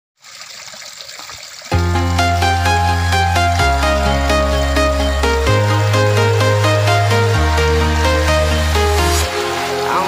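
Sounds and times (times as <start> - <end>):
water trickling and splashing: 0.2 - 3.9
loud music with deep bass: 1.7 - 10.0.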